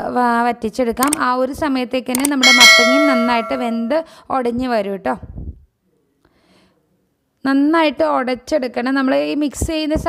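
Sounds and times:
bell-like metallic ring: 0:02.4 - 0:04.0.

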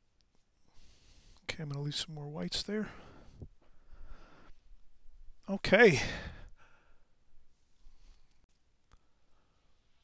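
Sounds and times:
man saying okay: 0:05.5 - 0:06.3.

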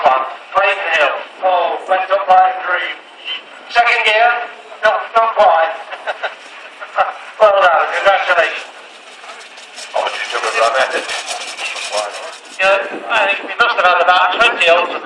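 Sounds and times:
man talking: 0:06.9 - 0:08.7, 0:09.9 - 0:15.0.

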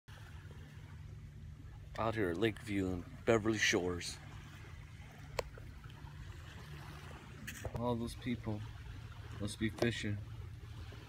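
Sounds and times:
steady low rumble: 0:00.1 - 0:11.0.

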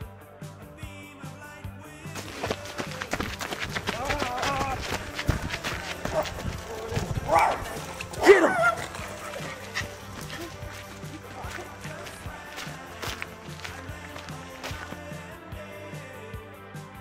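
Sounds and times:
background music: 0:00.0 - 0:17.0
small dog barking: 0:06.1 - 0:10.5.

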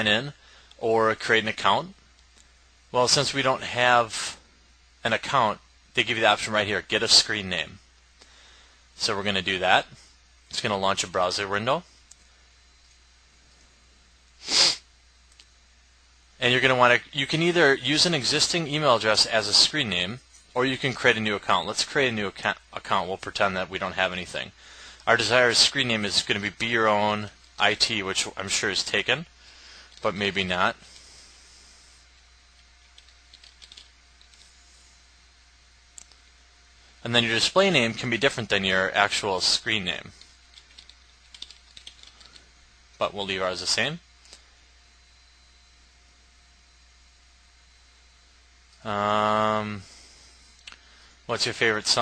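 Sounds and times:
man sneezing: 0:14.4 - 0:14.9
computer keyboard keystrokes: 0:33.0 - 0:34.4, 0:40.5 - 0:42.4.

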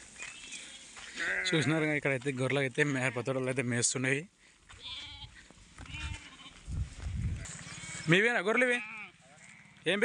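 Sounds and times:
sheep bleating: 0:00.6 - 0:01.9, 0:04.7 - 0:06.6, 0:07.4 - 0:10.0
low microphone rumbles: 0:06.6 - 0:07.6.

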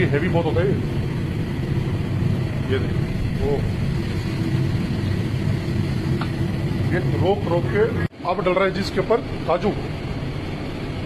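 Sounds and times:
ghee frying in a pan: 0:00.0 - 0:07.5
gas burner rumbling: 0:00.0 - 0:11.0.

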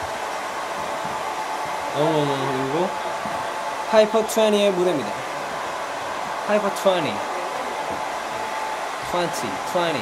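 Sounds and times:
hair dryer running: 0:00.0 - 0:10.0.

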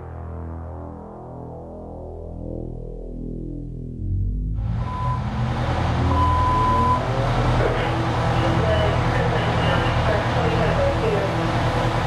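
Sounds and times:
truck engine idling: 0:04.6 - 0:12.0
steady beep: 0:04.8 - 0:05.4, 0:06.0 - 0:07.2
indistinct voices: 0:04.8 - 0:12.0.

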